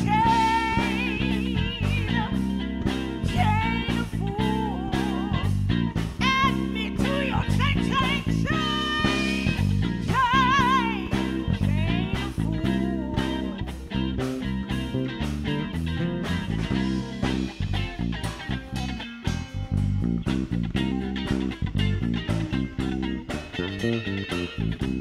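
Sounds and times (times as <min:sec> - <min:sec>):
woman singing with vibrato: 0:00.0 - 0:13.7
drum kit: 0:00.0 - 0:25.0
electric bass: 0:00.0 - 0:25.0
electric guitar: 0:00.0 - 0:25.0.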